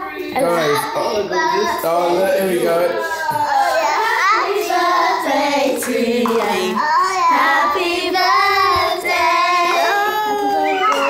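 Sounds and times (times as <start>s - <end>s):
children singing together: 0.0s - 11.0s.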